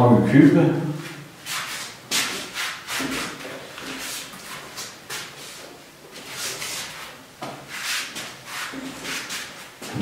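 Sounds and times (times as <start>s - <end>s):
eraser rubbing on whiteboard: 1.4s - 5.3s, 6.3s - 9.8s.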